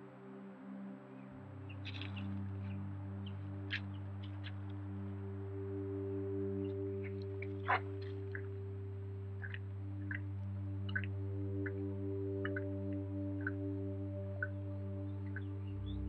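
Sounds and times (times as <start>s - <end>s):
ambient drone music: 0.0s - 16.0s.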